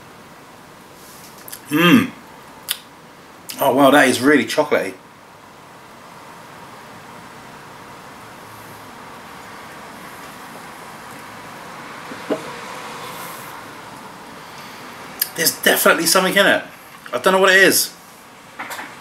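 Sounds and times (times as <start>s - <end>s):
road traffic noise: 5.0s - 19.0s.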